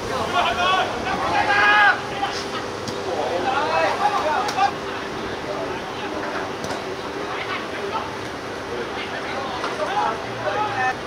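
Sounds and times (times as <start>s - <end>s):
footballers shouting and calling: 0.0s - 11.0s.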